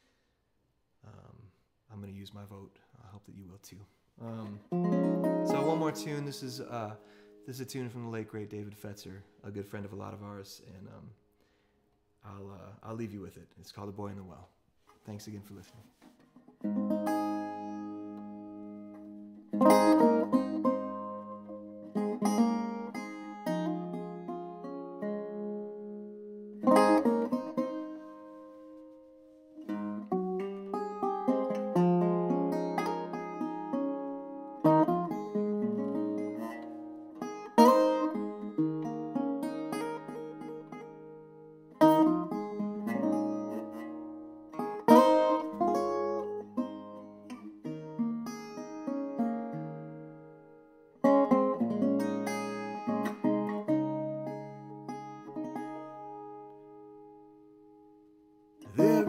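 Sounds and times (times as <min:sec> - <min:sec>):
solo acoustic guitar: 0:04.2 - 0:10.8, 0:14.8 - 0:59.0.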